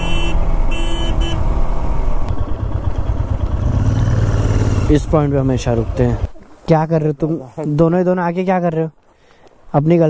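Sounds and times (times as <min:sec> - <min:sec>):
road noise: 0:00.0 - 0:10.0
motorcycle engine running: 0:01.2 - 0:06.3.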